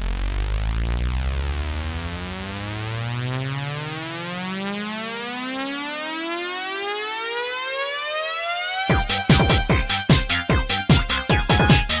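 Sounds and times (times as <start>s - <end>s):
synthesizer riser: 0.0s - 6.0s
techno beat with kick drum: 8.9s - 12.0s.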